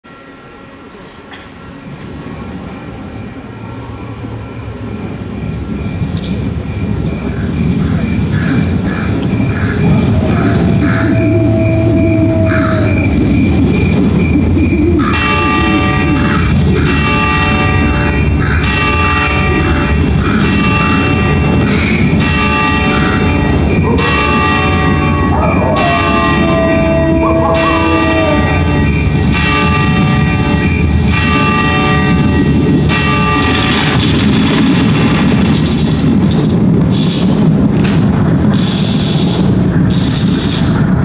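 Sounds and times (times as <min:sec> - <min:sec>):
bell tolling: 0:09.5 - 0:35.4
gliding tone: 0:09.7 - 0:18.3.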